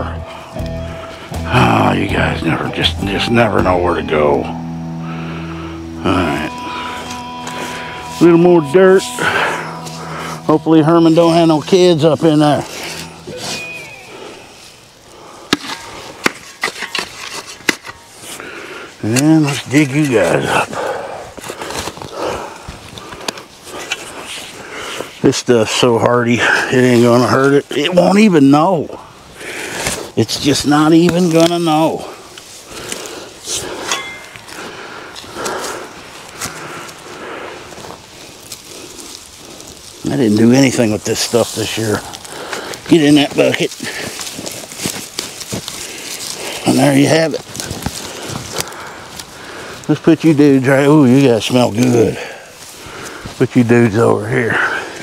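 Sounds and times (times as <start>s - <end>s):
shovel scooping dirt: 15.5s - 18.4s.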